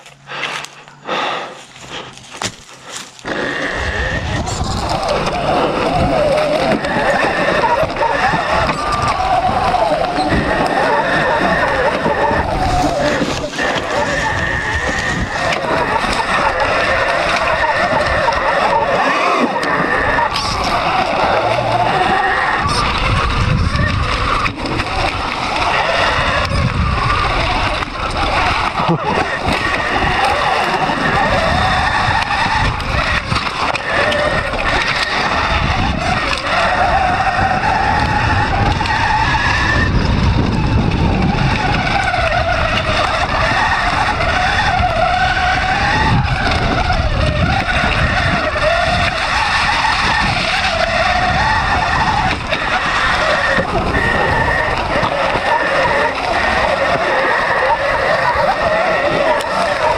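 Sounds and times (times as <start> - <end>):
dirt bike motor: 0.0 - 59.9
wind and tyres on dirt: 0.0 - 59.9.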